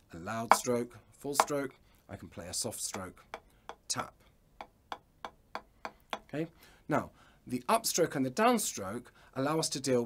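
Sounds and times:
drumstick tapping practice pad: 0.4s - 0.8s, 1.4s - 1.6s, 2.9s - 4.0s, 4.6s - 6.4s.

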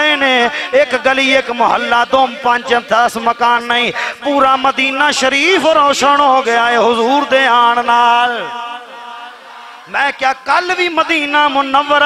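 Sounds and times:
hall echo: 0.0s - 12.0s
man chanting: 0.0s - 12.0s.

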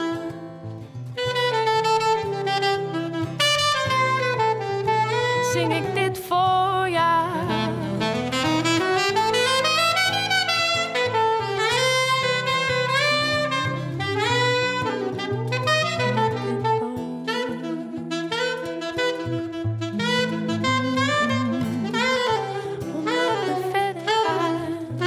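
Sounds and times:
alto saxophone solo: 0.0s - 25.0s.

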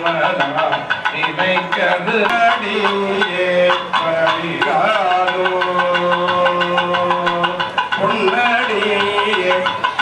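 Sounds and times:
group chanting: 1.1s - 9.8s.

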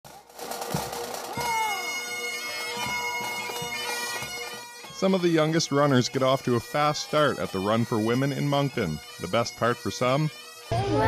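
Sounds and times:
bagpipe chanter melody: 1.3s - 11.0s
bagpipe drone: 1.4s - 11.0s
crowd voices: 9.8s - 11.0s.

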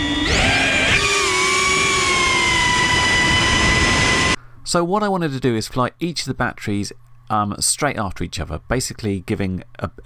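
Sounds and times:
quadcopter motors whining: 0.0s - 4.4s.

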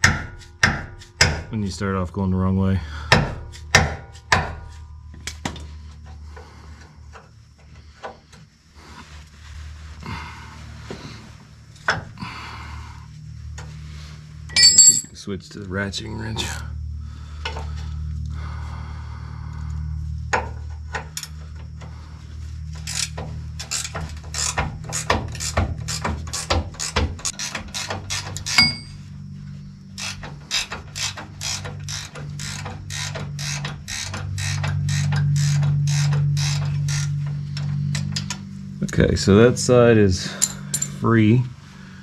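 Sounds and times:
steady low hum: 0.0s - 42.0s
ratchet wrench clicking: 22.8s - 29.0s, 30.0s - 37.2s, 40.4s - 41.0s.

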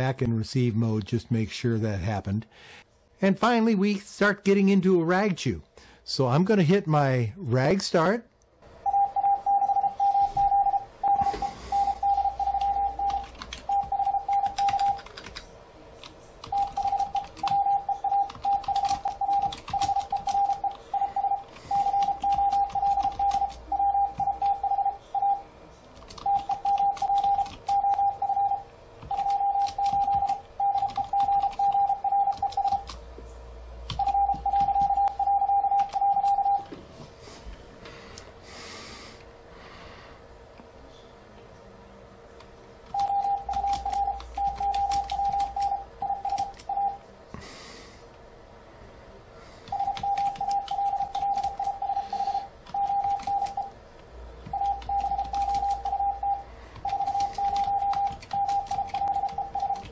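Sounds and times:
morse code beeping tone: 8.8s - 15.1s, 16.5s - 25.4s, 26.2s - 32.9s, 34.0s - 36.7s, 42.9s - 47.0s, 49.7s - 53.8s, 54.5s - 59.9s.

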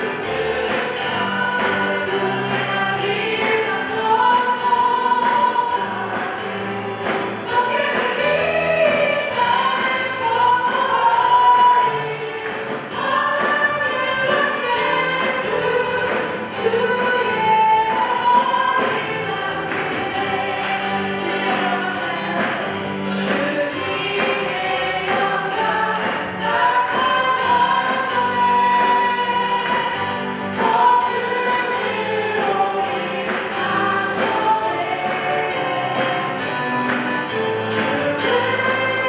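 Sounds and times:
keyboard and band accompaniment: 0.0s - 39.0s
many voices singing: 0.0s - 39.0s
women singing worship song: 0.0s - 39.0s.

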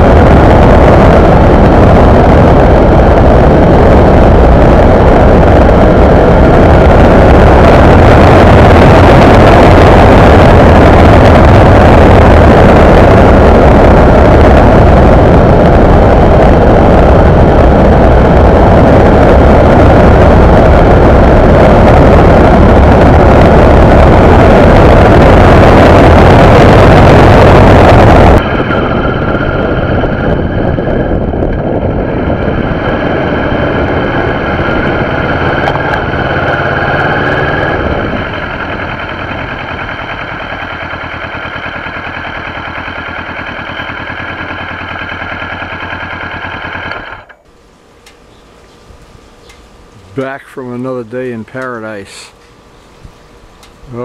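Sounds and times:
motorcycle engine running: 0.0s - 51.6s
wind noise over microphone: 0.0s - 54.0s.

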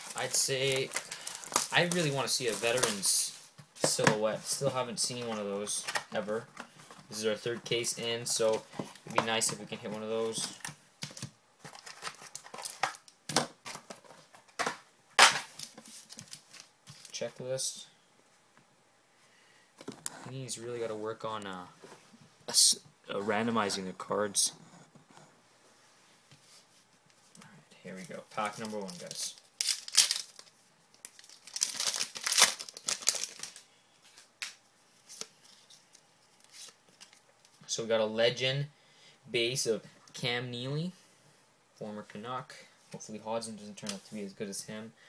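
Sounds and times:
foil wrappers crinkling: 0.0s - 3.3s, 28.0s - 34.5s.

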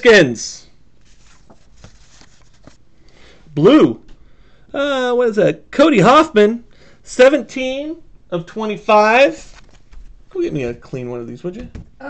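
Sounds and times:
faint ticks of handling paper: 9.4s - 10.1s.

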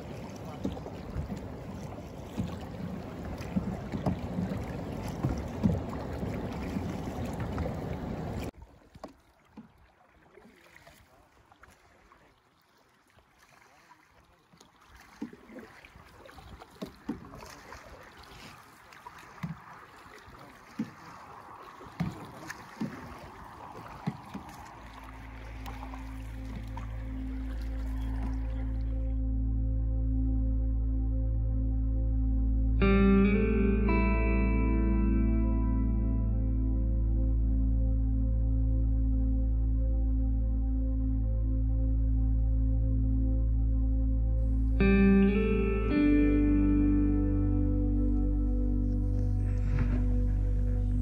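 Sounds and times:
paddle strokes and splashes: 0.0s - 29.2s, 48.1s - 51.0s
water noise: 0.0s - 51.0s
music: 26.1s - 51.0s.

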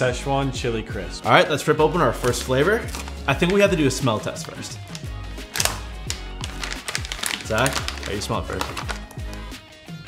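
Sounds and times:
background music with low beat: 0.0s - 10.0s
plastic pouch ripping open: 2.2s - 3.7s, 4.3s - 9.5s.

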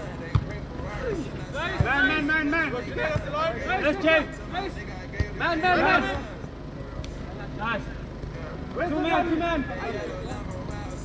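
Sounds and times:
players calling out: 0.0s - 11.0s
soccer ball thuds: 0.3s - 0.6s, 1.7s - 2.2s.

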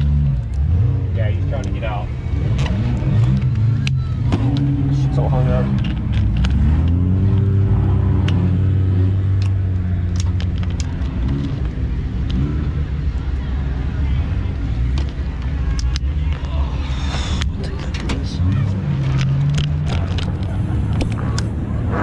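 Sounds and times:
race car engines passing: 0.0s - 22.0s.

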